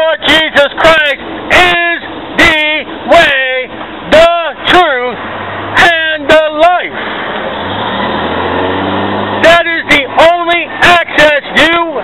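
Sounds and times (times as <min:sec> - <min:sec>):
man shouting: 0:00.0 - 0:05.2, 0:05.8 - 0:07.0, 0:09.4 - 0:12.0
faint low engine hum: 0:00.0 - 0:12.0.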